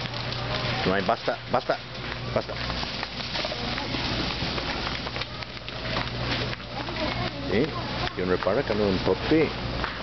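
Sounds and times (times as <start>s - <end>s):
shopping cart rattling: 0.0s - 9.5s.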